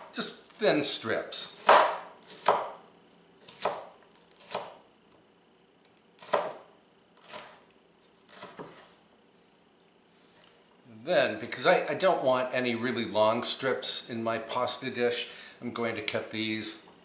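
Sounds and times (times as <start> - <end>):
knife slicing pepper: 1.4 - 2.8, 3.4 - 4.8, 5.9 - 6.6, 7.2 - 7.6, 8.2 - 9.0.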